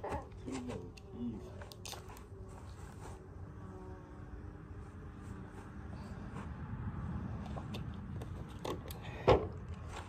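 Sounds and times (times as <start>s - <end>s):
footsteps on grass: 1.5s - 3.4s.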